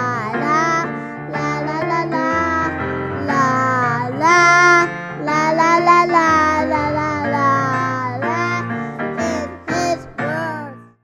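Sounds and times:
children singing: 0.0 - 10.7
instrumental backing: 0.0 - 10.9.

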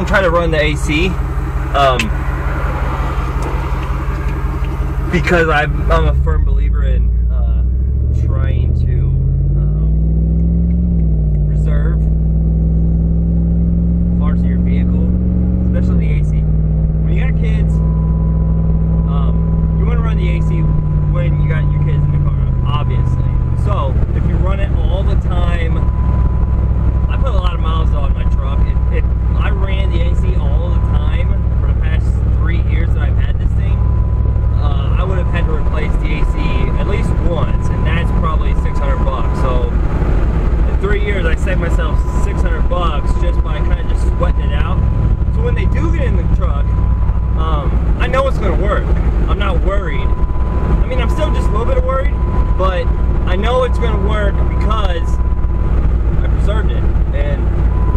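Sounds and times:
road noise inside cabin: 0.0 - 57.9
vehicle engine accelerating: 0.0 - 57.9.

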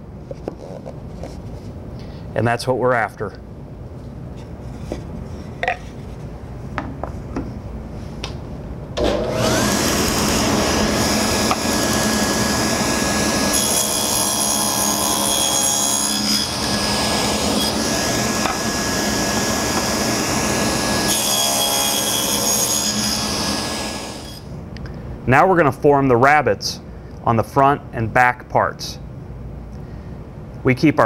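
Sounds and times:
table saw whining: 9.0 - 24.4
saw cutting through board: 9.1 - 24.4.

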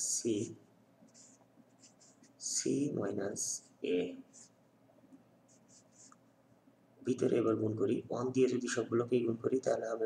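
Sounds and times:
man speaking: 0.0 - 0.7, 2.4 - 4.5, 7.0 - 10.0
marker scratching on paper: 1.1 - 2.8, 3.6 - 4.6, 5.4 - 6.2.

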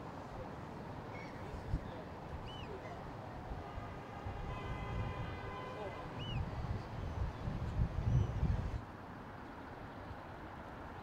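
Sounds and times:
distant traffic rumble: 0.0 - 11.0
wind: 0.0 - 11.0.

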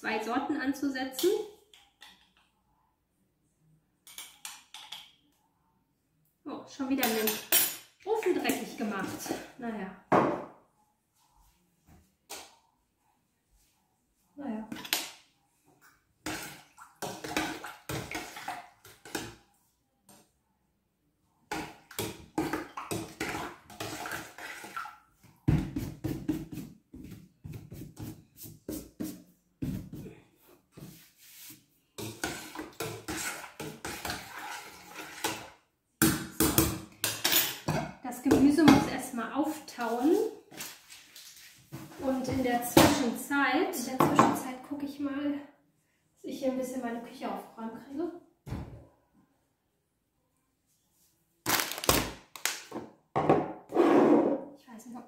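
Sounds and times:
metal spoon scraping in pot: 32.0 - 35.5
jars and utensils clattering: 37.0 - 38.0.

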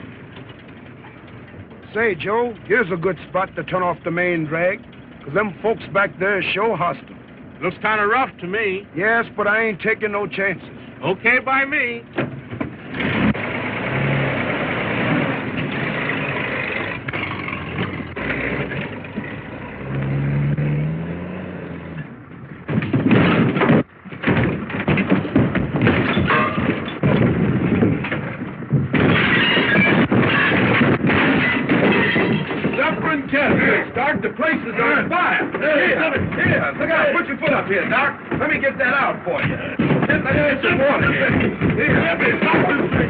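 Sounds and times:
car engine running: 0.0 - 43.0
trailer crashing and clattering: 0.0 - 43.0.

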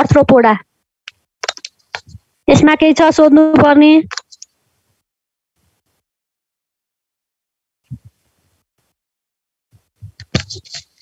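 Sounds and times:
person speaking: 0.0 - 4.5, 10.1 - 11.0.

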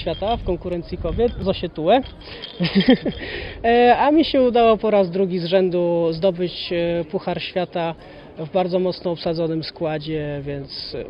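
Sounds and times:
man talking: 0.0 - 3.0, 3.6 - 11.0.

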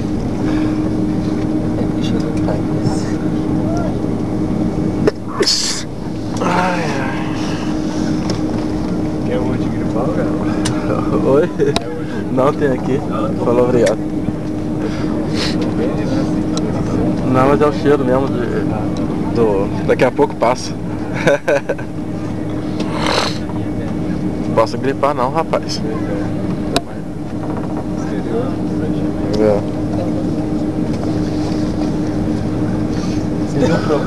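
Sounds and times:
aircraft cabin rumble: 0.0 - 34.0
steady hum: 0.0 - 34.0.

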